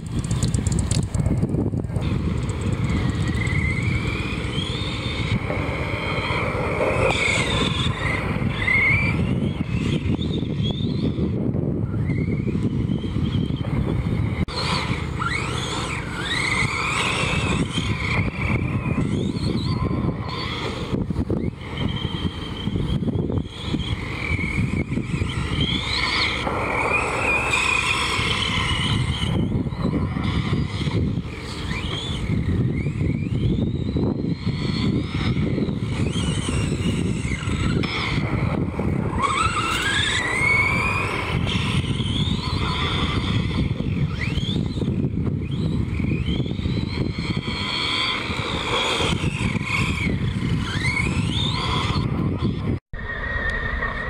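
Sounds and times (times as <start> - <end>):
electric motor whine: 0.0 - 54.0
tires rumbling on dirt: 0.0 - 54.0.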